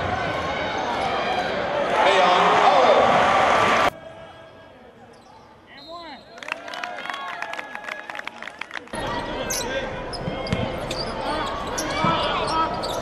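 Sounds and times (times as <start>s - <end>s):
loud crowd noise: 0.0s - 13.0s
basketball bouncing: 10.2s - 10.7s.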